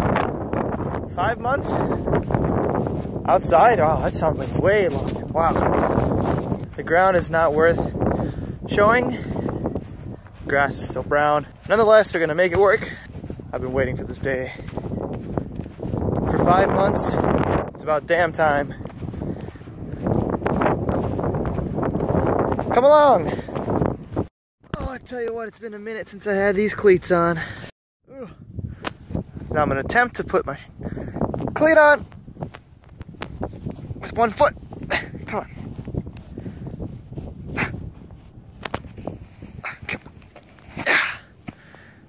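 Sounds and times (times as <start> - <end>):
wind buffeting microphone: 0.0 - 42.0
shoe and clothing scuffs and rustles: 2.2 - 6.9, 34.9 - 41.8.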